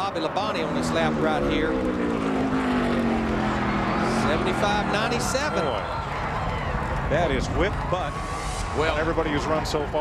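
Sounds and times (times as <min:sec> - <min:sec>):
race car engine passing: 0:00.0 - 0:10.0.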